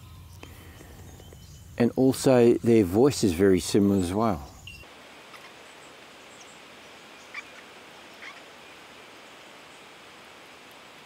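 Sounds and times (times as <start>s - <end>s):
faint steady hiss: 0.0s - 11.0s
rats squeaking: 8.2s - 8.4s.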